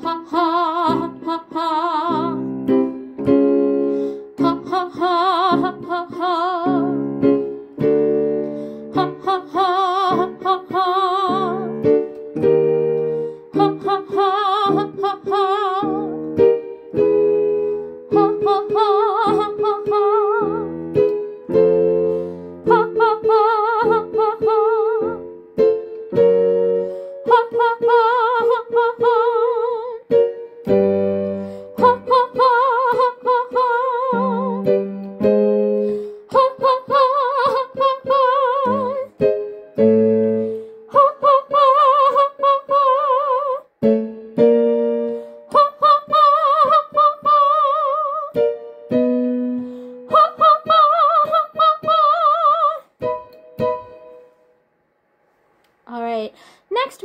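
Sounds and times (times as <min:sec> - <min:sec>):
woman singing vocal exercise: 0:00.0 - 0:02.5, 0:04.3 - 0:07.0, 0:08.9 - 0:11.8, 0:13.5 - 0:16.1, 0:18.1 - 0:20.6, 0:22.6 - 0:25.2, 0:27.2 - 0:30.0, 0:31.7 - 0:34.7, 0:36.2 - 0:39.2, 0:40.9 - 0:43.7, 0:45.5 - 0:48.4, 0:50.1 - 0:52.9
instrumental accompaniment: 0:11.4 - 0:28.0, 0:30.1 - 0:37.0, 0:53.0 - 0:54.6.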